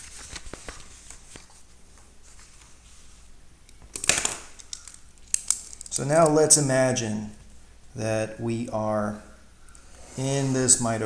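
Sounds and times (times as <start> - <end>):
paper rustling: 0.0 - 3.2.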